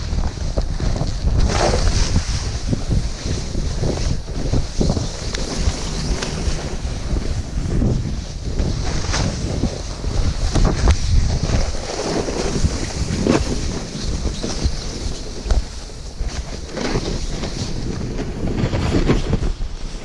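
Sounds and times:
snowboard scraping over snow: 0.0s - 20.0s
wind buffeting microphone: 0.0s - 20.0s.

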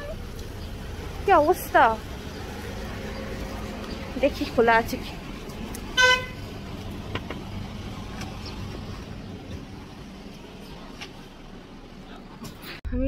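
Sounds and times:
street traffic noise: 0.0s - 13.0s
car horn toot: 5.9s - 6.5s.

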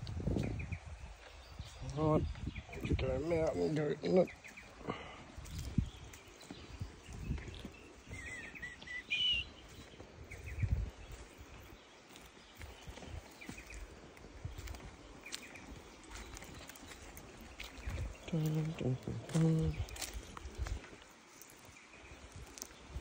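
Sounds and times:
footsteps on dry mud and leaves: 0.0s - 23.0s
bird calling: 7.6s - 10.6s.

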